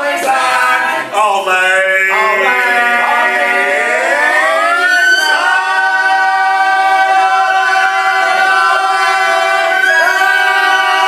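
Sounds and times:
group singing a cappella: 0:00.0 - 0:11.0.

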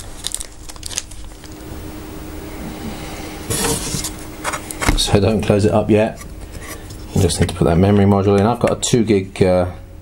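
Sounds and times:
plastic packet crinkling: 0:00.0 - 0:01.6.

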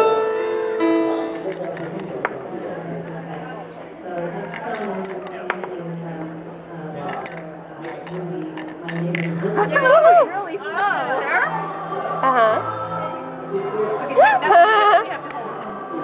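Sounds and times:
keyboard music: 0:00.0 - 0:02.2
crowd chatter: 0:00.0 - 0:16.0
wooden toys clicking: 0:01.4 - 0:02.2, 0:04.5 - 0:05.4, 0:07.1 - 0:09.4.

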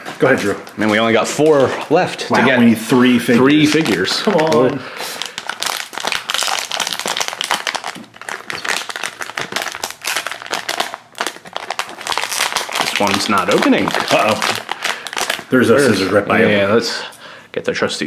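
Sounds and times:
foil bag crinkling: 0:02.8 - 0:16.1.

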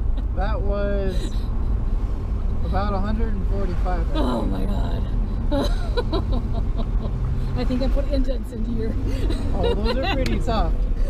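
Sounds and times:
person laughing and talking: 0:00.0 - 0:01.4, 0:05.5 - 0:07.1, 0:09.1 - 0:10.7
car engine and road noise: 0:00.0 - 0:11.0.

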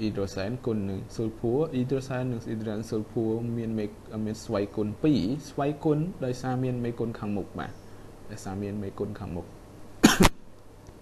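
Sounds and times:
person speaking: 0:00.0 - 0:09.6
man coughing: 0:10.0 - 0:10.4.

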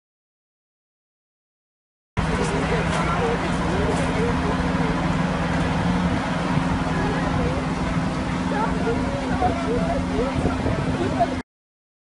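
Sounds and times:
faint voices: 0:02.2 - 0:11.4
fire truck engine running: 0:02.2 - 0:11.4.

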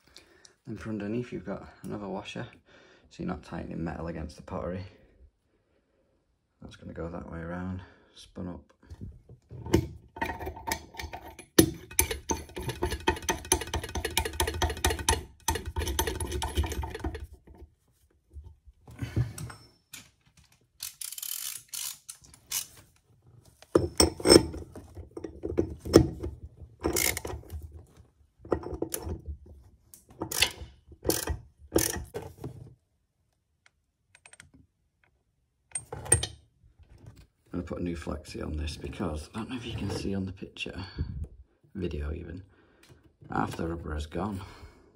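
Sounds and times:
metal clicking and rattling: 0:09.6 - 0:17.6, 0:23.7 - 0:27.6.

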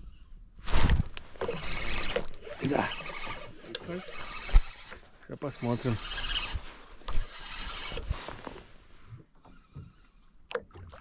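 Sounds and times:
fishing reel whirring: 0:00.7 - 0:08.5.

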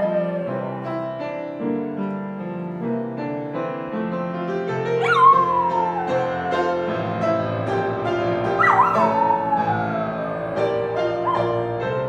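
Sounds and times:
dog howling: 0:00.0 - 0:01.2, 0:05.0 - 0:11.7
sustained piano notes: 0:00.0 - 0:12.0.

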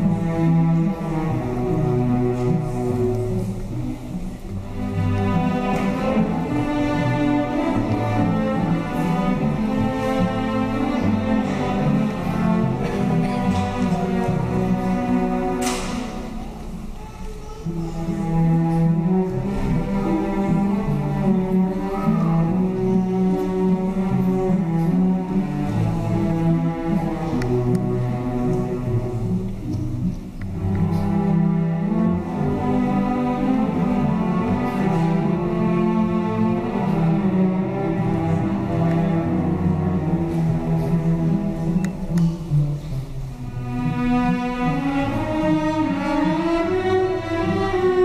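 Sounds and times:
cellos and basses bowing low notes: 0:00.0 - 0:48.0
string orchestra playing: 0:00.0 - 0:48.0.

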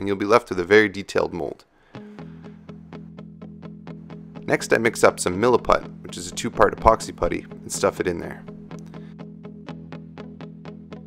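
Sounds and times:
plucked guitar notes: 0:01.9 - 0:11.0.

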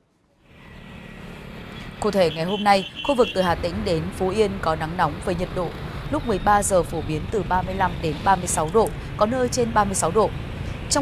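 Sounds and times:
motorbikes and cars passing: 0:00.2 - 0:11.0.

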